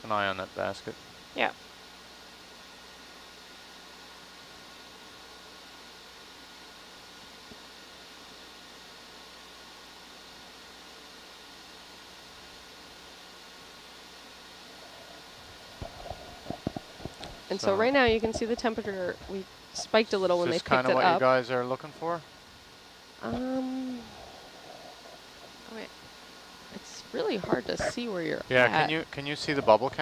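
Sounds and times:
faint hum: 0.0 - 30.0
steady low hiss: 0.0 - 30.0.

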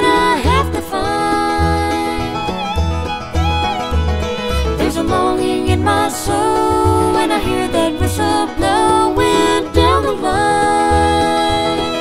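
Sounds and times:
bluegrass band playing: 0.0 - 12.0
steady bass: 0.0 - 12.0.

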